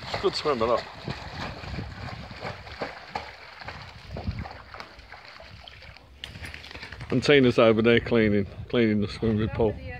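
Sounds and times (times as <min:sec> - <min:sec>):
dog splashing in water: 0:00.0 - 0:07.2
wind rumble on microphone: 0:00.0 - 0:09.9.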